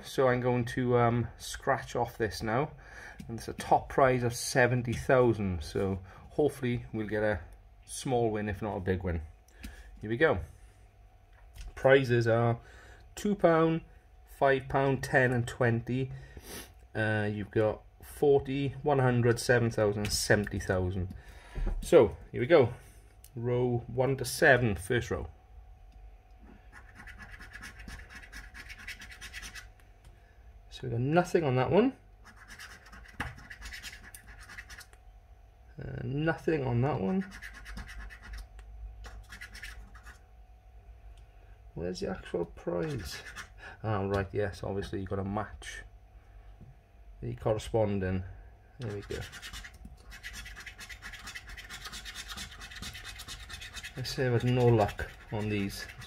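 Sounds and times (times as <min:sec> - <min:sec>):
coin scratching a scratch card: 0:26.6 - 0:29.7, 0:32.2 - 0:34.9, 0:37.0 - 0:40.2, 0:42.8 - 0:43.6, 0:48.8 - 0:56.0.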